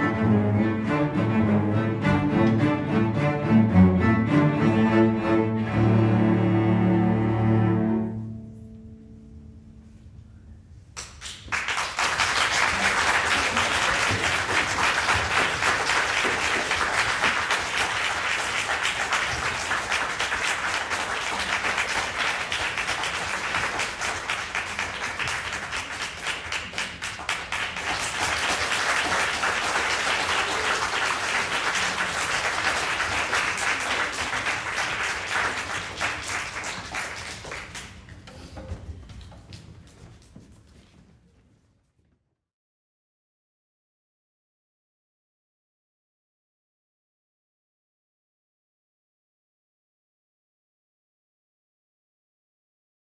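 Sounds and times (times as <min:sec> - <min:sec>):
audience applauding: 0:11.0 - 0:38.2.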